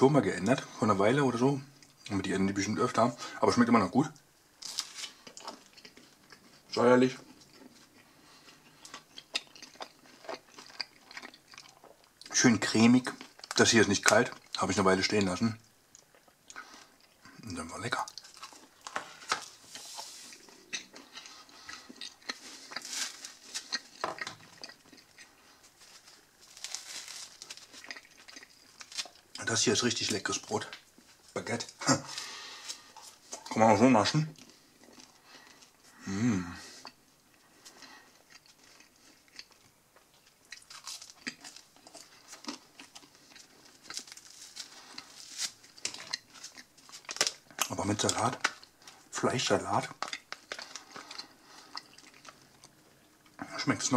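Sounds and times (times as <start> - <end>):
bread crust crackling: 4.6 - 35.8, 37.4 - 53.9.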